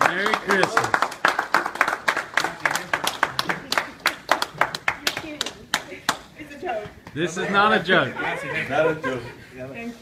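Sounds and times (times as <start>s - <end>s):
hands clapping in applause: 0.0s - 6.2s.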